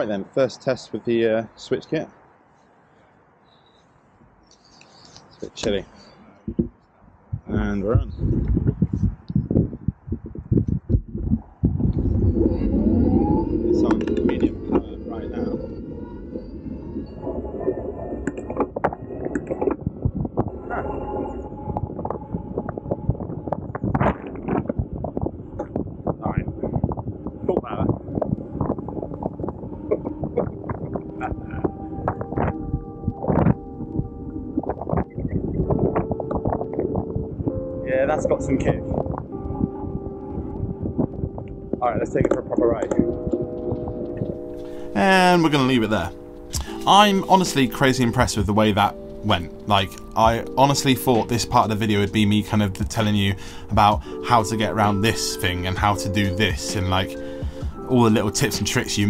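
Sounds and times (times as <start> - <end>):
wind buffeting microphone: 5.2 - 59.0.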